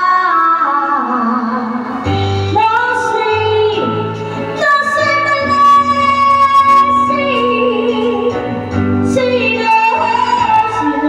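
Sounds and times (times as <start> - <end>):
music backing track: 0.0 - 11.0
woman singing into microphone: 0.0 - 11.0.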